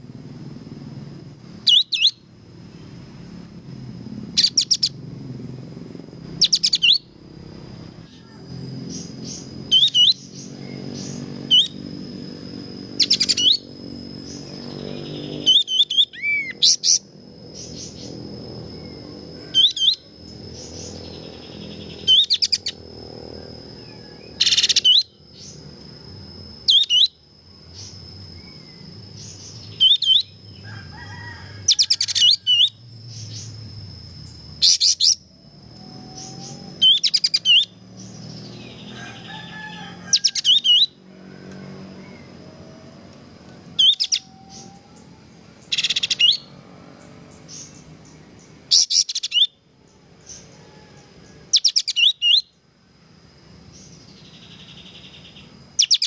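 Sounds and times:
high insect trill: 0.0 - 56.0
songbird calls: 0.7 - 52.7, 53.4 - 56.0.

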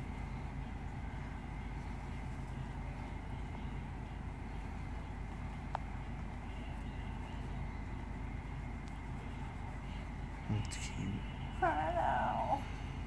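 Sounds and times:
faint high whine: 0.0 - 13.0
low background hum: 0.0 - 13.0.

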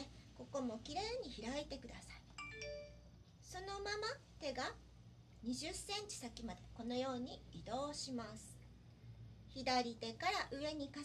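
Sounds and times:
woman speaking: 0.0 - 2.4, 3.4 - 4.8, 5.4 - 8.7, 9.5 - 11.0
electronic chime: 2.4 - 3.2.

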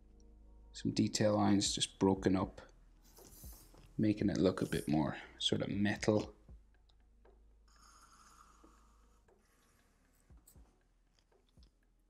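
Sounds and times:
marker stroking on paper: 3.1 - 4.9.

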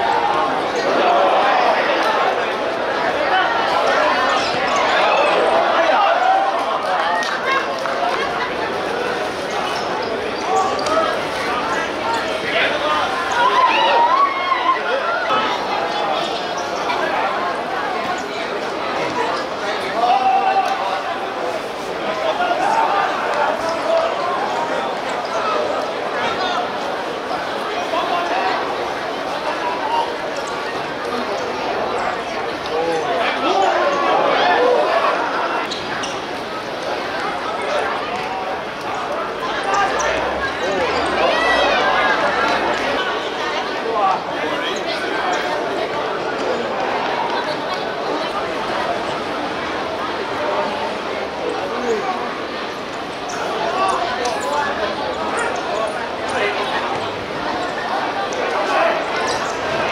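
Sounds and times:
voices of players and spectators: 0.0 - 59.9.

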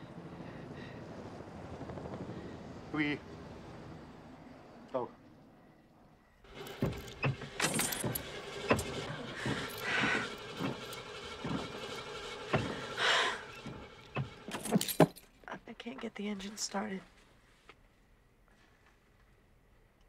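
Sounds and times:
car engine cranking: 6.4 - 15.2
rattling knocks: 6.5 - 15.2.

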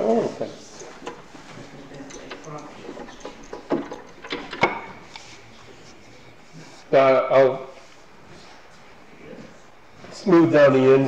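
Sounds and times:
wood knocking against metal: 0.8 - 5.2.

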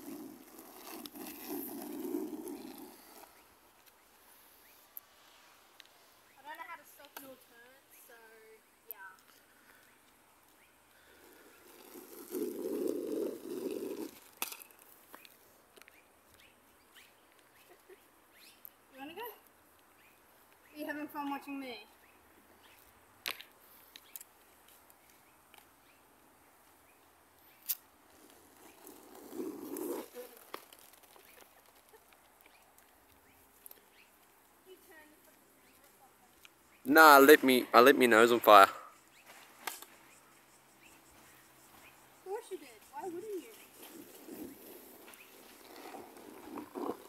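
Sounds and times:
skateboard wheels rolling on asphalt: 0.0 - 7.5, 9.1 - 18.5, 19.2 - 40.2, 40.9 - 47.0.

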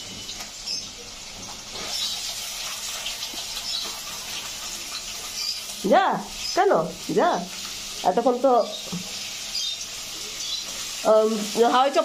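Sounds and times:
water running from a tap: 0.0 - 12.0.

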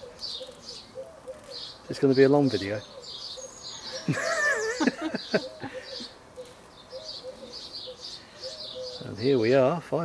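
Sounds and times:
birds chirping: 0.0 - 10.0
person laughing: 3.9 - 6.1.

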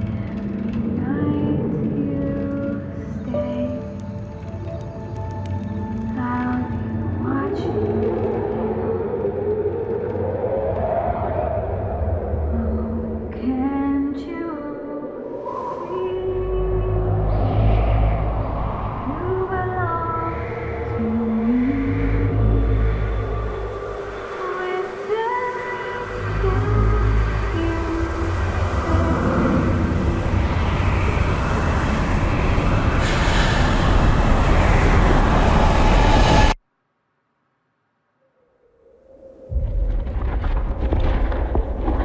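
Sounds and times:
deep rumble: 0.0 - 36.6, 39.2 - 42.0
eerie drone tone: 0.0 - 36.6.

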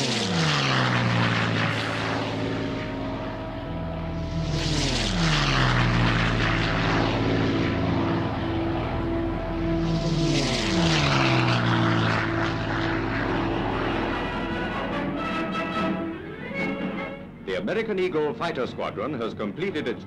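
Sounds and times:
propeller aircraft flying past: 0.0 - 20.0.

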